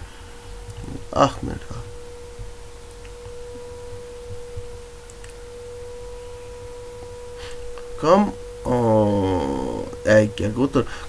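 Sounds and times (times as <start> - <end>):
low background rumble: 0.0 - 11.0
steady single-pitched tone: 0.0 - 11.0.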